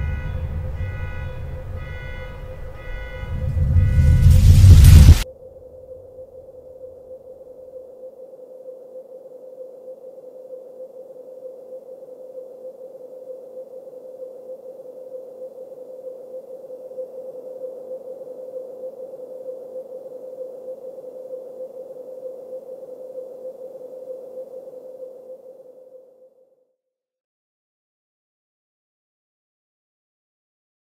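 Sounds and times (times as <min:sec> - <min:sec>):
electronic drone tone: 0:00.0 - 0:05.2
faint hiss: 0:03.2 - 0:05.2.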